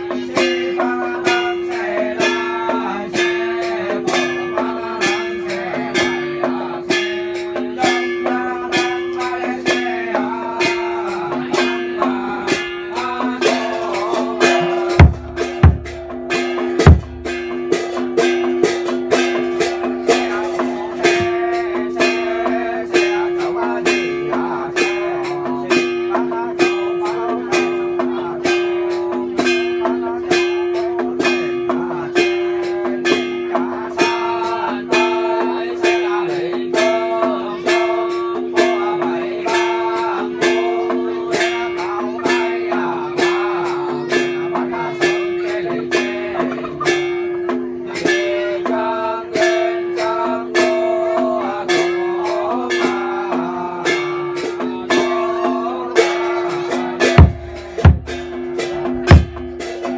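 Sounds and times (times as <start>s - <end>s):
plucked-string ritual music: 0.0s - 59.9s
sharp percussive strikes: 0.0s - 59.9s.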